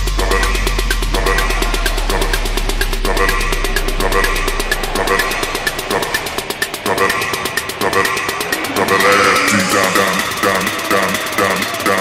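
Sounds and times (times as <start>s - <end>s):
fast electronic music: 0.0s - 12.0s.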